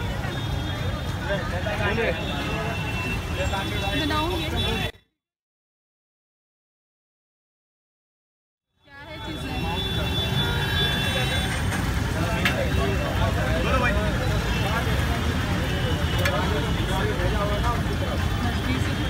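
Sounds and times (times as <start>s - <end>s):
traffic rumble: 0.0s - 4.9s, 8.9s - 19.0s
many voices talking: 0.0s - 5.0s, 8.9s - 19.0s.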